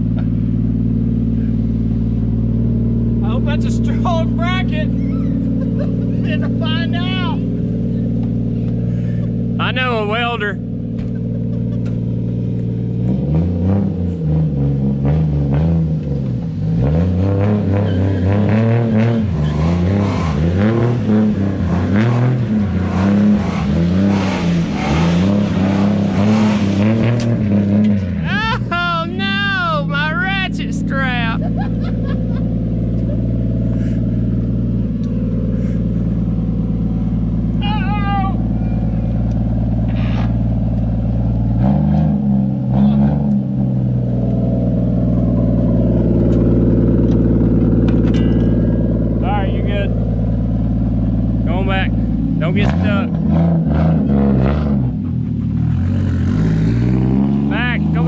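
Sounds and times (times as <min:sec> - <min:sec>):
car engine revving: 0:00.0 - 0:58.0
high wavering squeal: 0:04.9 - 0:05.6.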